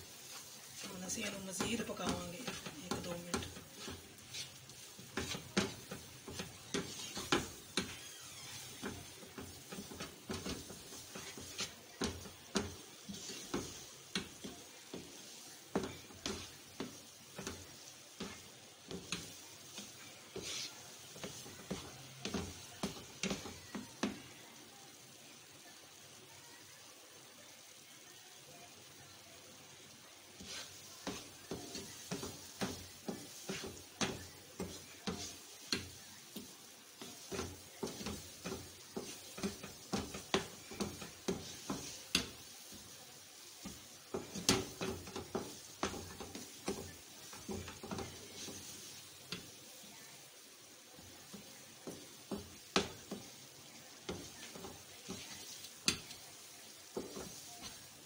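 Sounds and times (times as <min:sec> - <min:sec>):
wooden spatula scraping a pan: 0:00.0 - 0:24.4, 0:29.8 - 0:58.0
faint sizzle: 0:00.0 - 0:58.0.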